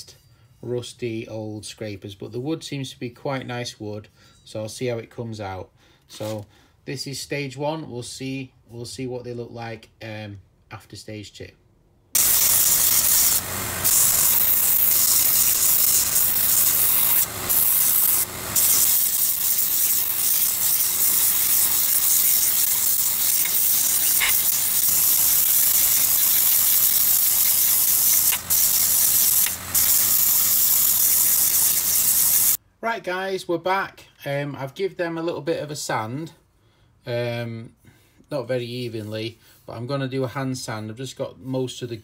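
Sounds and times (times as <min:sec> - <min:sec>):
belt sander hissing: 0:12.2 - 0:32.6.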